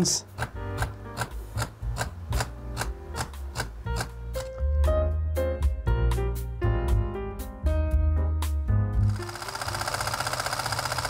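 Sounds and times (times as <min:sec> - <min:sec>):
camera shutter clicking: 0:09.2 - 0:11.0.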